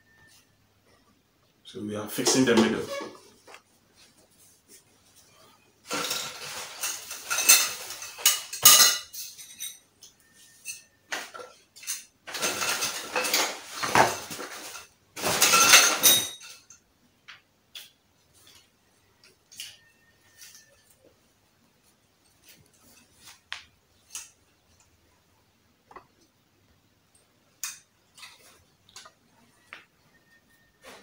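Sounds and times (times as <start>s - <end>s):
metal tubes clinking and rattling: 5.9s - 16.8s.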